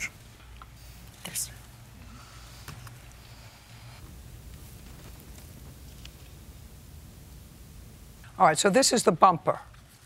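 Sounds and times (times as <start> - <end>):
soft whisper: 0.8 - 4.0.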